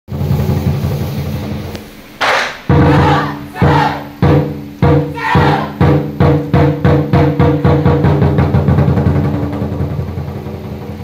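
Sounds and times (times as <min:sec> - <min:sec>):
heavy barrel drum strokes: 0:00.1 - 0:11.0
shout-like burst: 0:02.2 - 0:04.2, 0:05.0 - 0:05.9.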